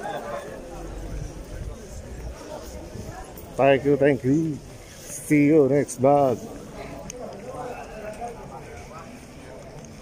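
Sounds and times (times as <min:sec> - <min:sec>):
low outdoor murmur: 0:00.0 - 0:10.0.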